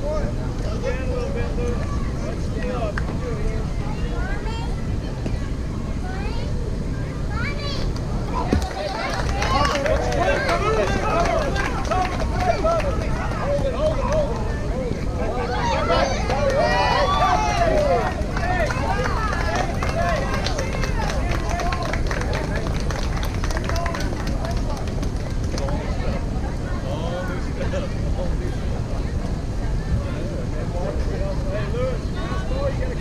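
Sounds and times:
people shouting and chattering: 0.0s - 33.0s.

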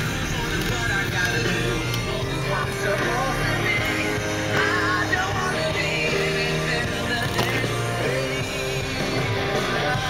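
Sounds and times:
rock music: 0.0s - 10.0s.

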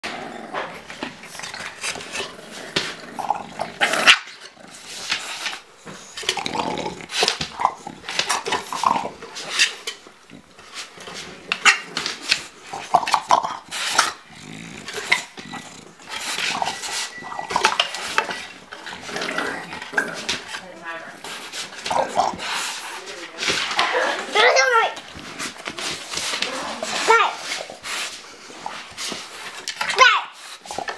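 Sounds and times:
dogs breathing and vocalizing: 0.0s - 30.9s.

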